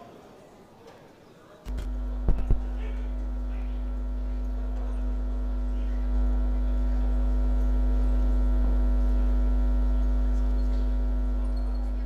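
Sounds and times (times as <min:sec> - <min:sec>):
electrical mains hum: 0:01.5 - 0:12.0.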